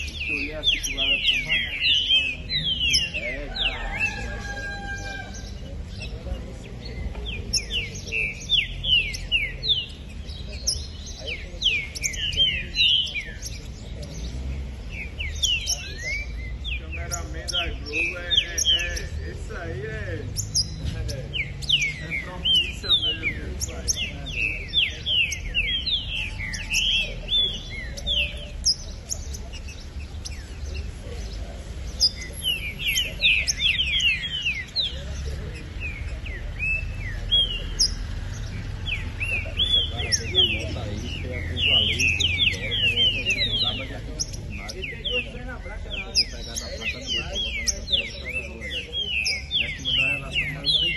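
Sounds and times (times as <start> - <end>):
songbirds chirping: 0.0 - 50.9.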